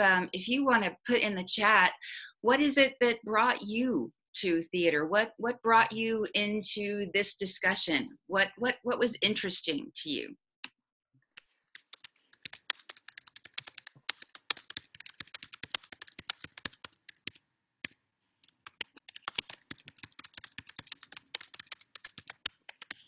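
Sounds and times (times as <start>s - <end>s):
computer keyboard typing: 11.3s - 23.0s.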